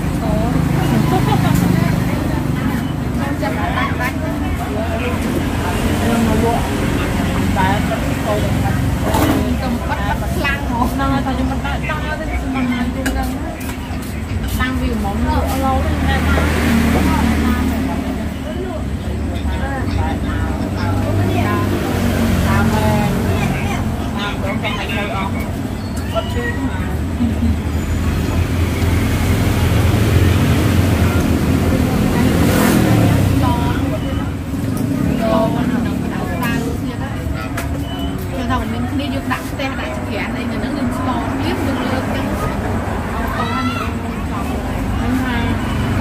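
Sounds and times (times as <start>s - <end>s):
people talking: 0.0s - 46.0s
road traffic rumble: 0.0s - 46.0s.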